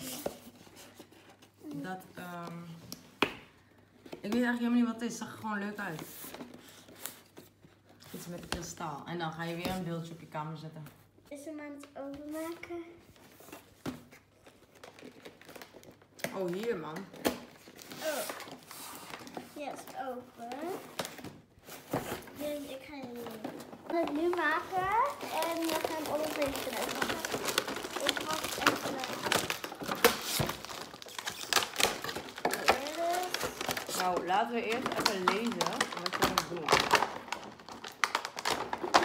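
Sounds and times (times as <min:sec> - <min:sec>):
packaging crinkling and rustling: 0:12.0 - 0:39.0.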